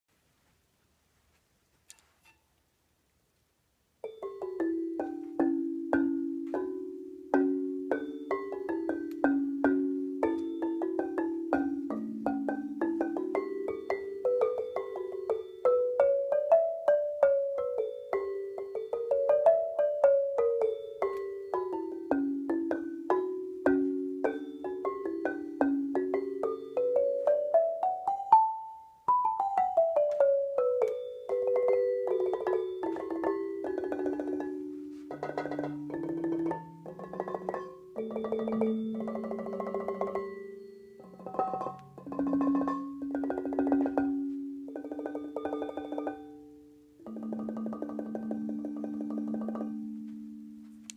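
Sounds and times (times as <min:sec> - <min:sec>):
lithophone notes struck with mallets: 0:04.0 - 0:50.9.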